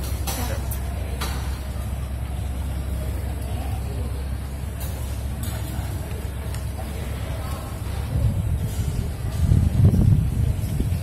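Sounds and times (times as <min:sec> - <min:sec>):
low rumble: 0:07.2 - 0:11.0.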